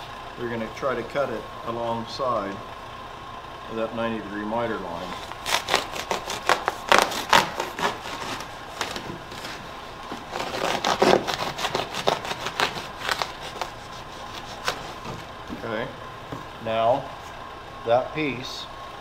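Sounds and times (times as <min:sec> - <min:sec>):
knife cutting pipe insulation: 0:05.0 - 0:15.4.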